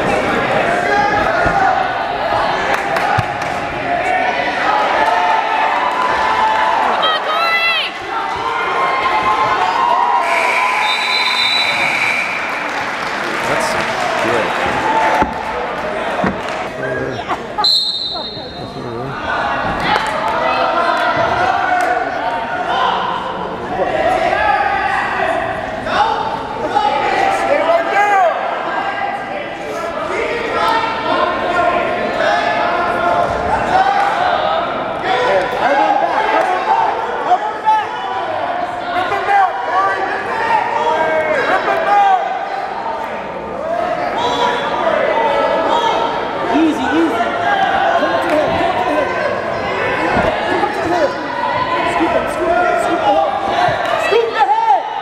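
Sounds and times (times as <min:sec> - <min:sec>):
spectators shouting and talking: 0:00.0 - 0:55.0
referee's whistle: 0:10.2 - 0:12.5, 0:17.6 - 0:18.8.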